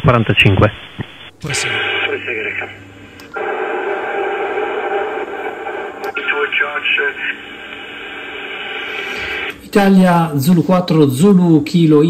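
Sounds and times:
garbled radio voices: 0:00.0 - 0:02.8, 0:03.4 - 0:09.5
radio static hiss: 0:00.0 - 0:09.6
radio switch click: 0:06.0 - 0:06.3.

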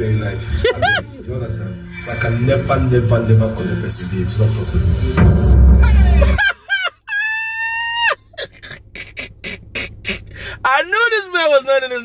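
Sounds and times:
man laughing hard: 0:00.5 - 0:01.2, 0:05.9 - 0:10.6.

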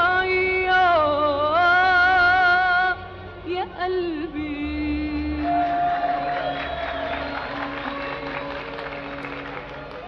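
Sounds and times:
person singing: 0:00.0 - 0:06.9
audience applause and cheering: 0:05.3 - 0:10.0.

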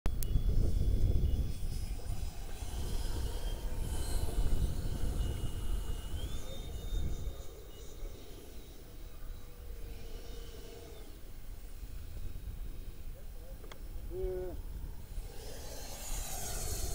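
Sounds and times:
electric ducted fans whining: 0:00.1 - 0:16.9
heavy low rumble: 0:00.1 - 0:16.9.

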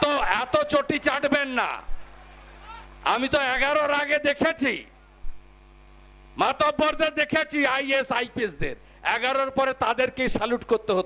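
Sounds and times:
man speaking into microphone: 0:00.0 - 0:01.9, 0:03.0 - 0:05.0, 0:06.4 - 0:11.0
electrical mains hum: 0:00.0 - 0:11.0.

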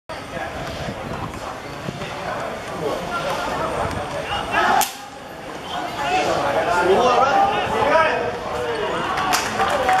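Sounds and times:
voices calling and shouting: 0:00.1 - 0:10.0.

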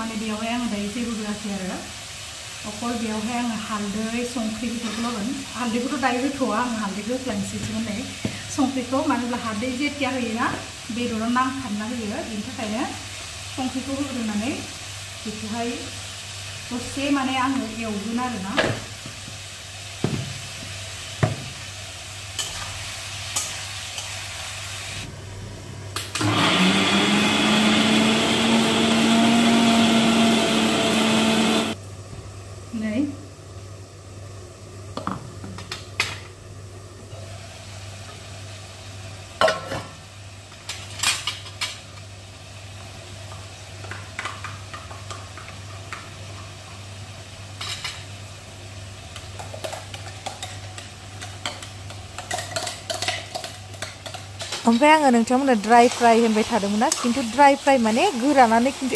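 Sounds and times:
mixer grinder running: 0:26.2 - 0:31.8.

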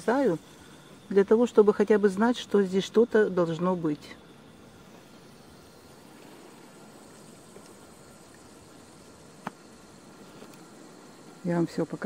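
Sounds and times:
faint outdoor background hiss: 0:00.0 - 0:12.0.

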